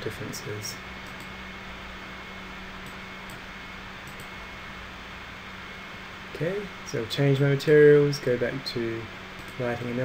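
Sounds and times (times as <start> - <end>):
faint low hum: 0.0 - 10.0
faint clicks: 4.0 - 4.3.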